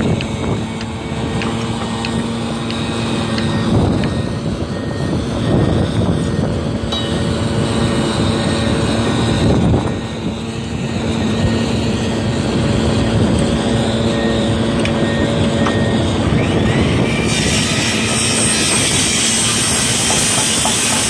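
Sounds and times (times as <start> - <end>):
machine engine drone: 0.0 - 21.0.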